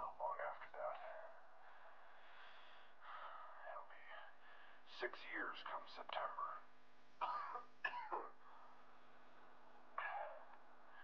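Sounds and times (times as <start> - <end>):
man coughing: 7.2 - 8.4, 10.0 - 10.4.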